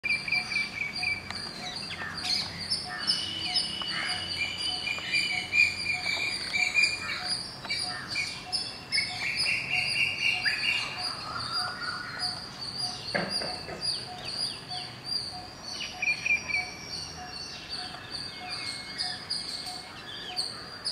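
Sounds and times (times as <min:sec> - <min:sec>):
birds chirping and trilling: 0:00.0 - 0:20.9
insects chirping: 0:00.1 - 0:20.9.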